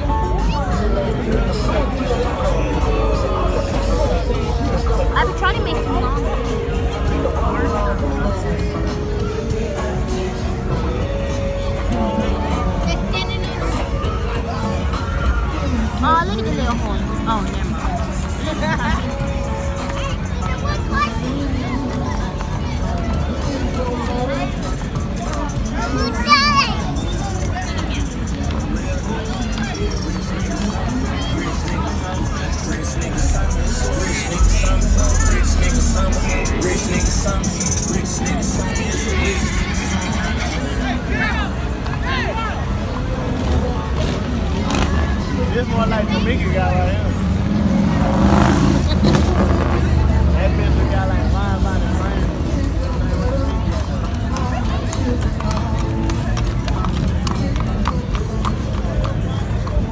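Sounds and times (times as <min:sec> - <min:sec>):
people talking: 0:00.0 - 0:59.9
music with heavy bass: 0:29.7 - 0:40.8
car engine pulling away: 0:31.2 - 0:40.6, 0:42.4 - 0:52.2.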